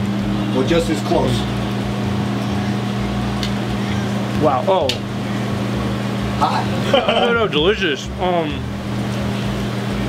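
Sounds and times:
kitchen equipment humming: 0.0 - 10.0.

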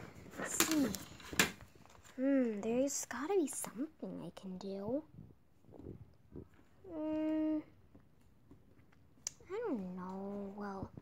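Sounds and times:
faint soft sounds: 0.0 - 11.0
child humming: 6.8 - 7.7.

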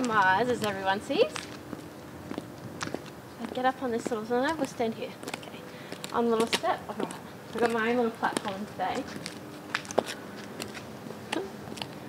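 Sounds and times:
high heels clacking on concrete: 0.0 - 12.0.

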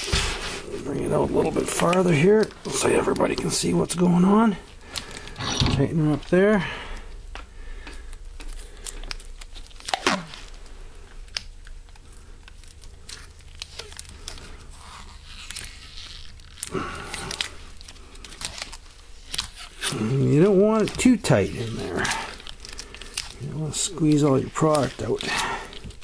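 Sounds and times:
tape crinkling and rustling: 0.0 - 26.0
man speaking: 0.7 - 4.7, 5.4 - 6.8, 19.9 - 22.3, 23.4 - 25.6
tape ripping: 8.6 - 26.0.

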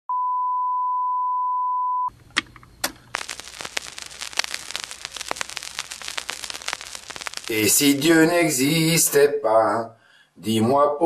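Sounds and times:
faint crackle with clicks: 2.2 - 8.2.

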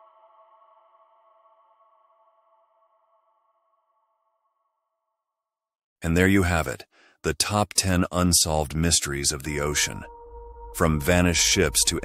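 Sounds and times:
droning music chord: 9.4 - 12.0.

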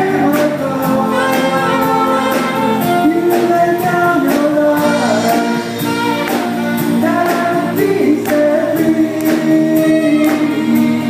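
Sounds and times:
bass guitar: 0.0 - 11.0
drums: 0.0 - 11.0
electric guitar: 0.0 - 11.0.

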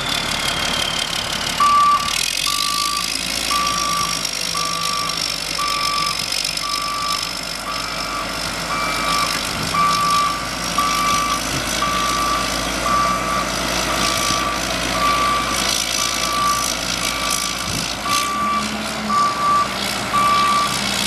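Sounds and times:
diesel engine running: 0.0 - 21.0
backup alarm beeping: 1.6 - 17.5.

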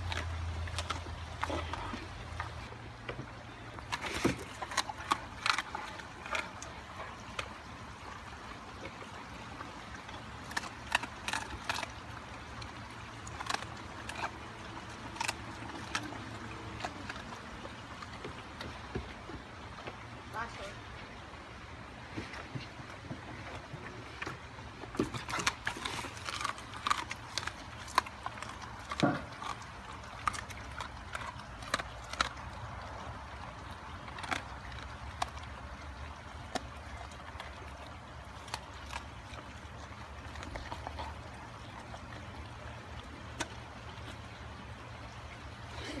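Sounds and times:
dog crunching bones: 0.0 - 19.9, 22.4 - 45.2.

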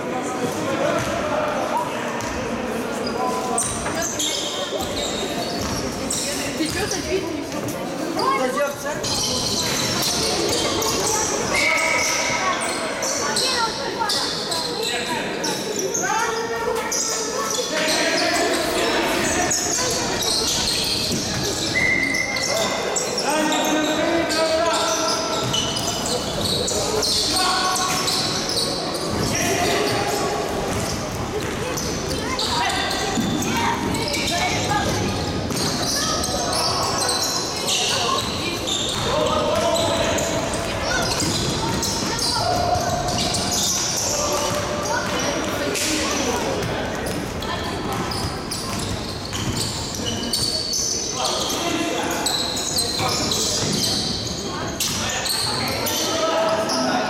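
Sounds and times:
ball bouncing on court: 4.8 - 6.0, 20.6 - 21.9, 30.5 - 36.3, 38.1 - 50.6, 53.0 - 54.0.

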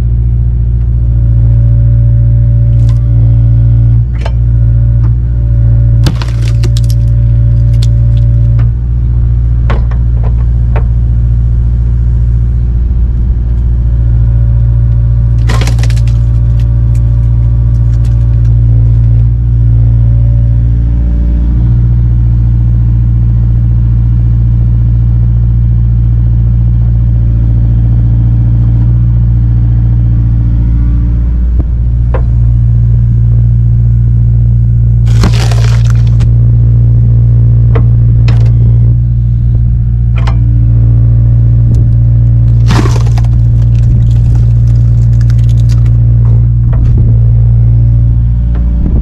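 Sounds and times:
excavator engine drone: 0.0 - 49.0
wood cracking apart: 2.8 - 3.0, 6.0 - 8.6, 15.3 - 19.3, 35.0 - 36.3, 42.2 - 46.2.

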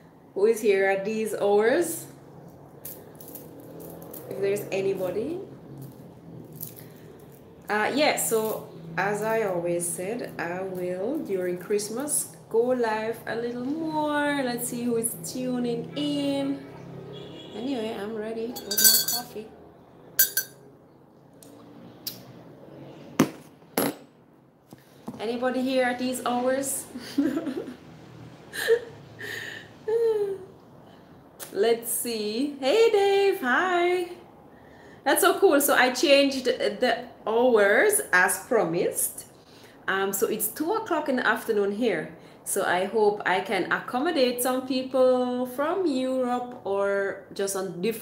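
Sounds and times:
low steady hum: 17.6 - 21.4
coffee cup clinking: 18.6 - 19.3, 20.2 - 20.6.

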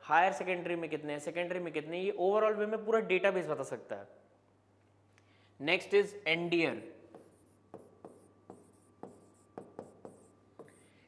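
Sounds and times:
marker pen writing on board: 7.0 - 11.0.

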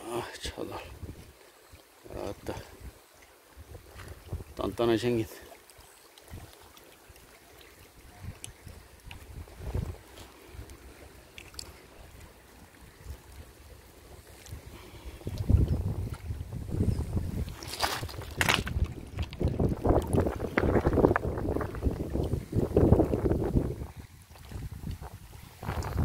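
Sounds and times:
wind buffeting microphone: 3.6 - 4.7, 8.0 - 10.7, 14.2 - 26.0.

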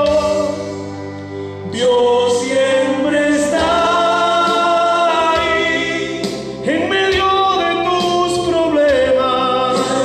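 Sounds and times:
man singing into microphone: 0.0 - 0.8, 1.6 - 10.0.

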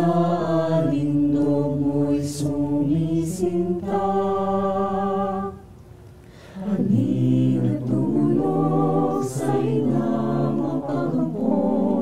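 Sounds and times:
mixed choir singing a cappella: 0.0 - 5.7, 6.6 - 12.0.

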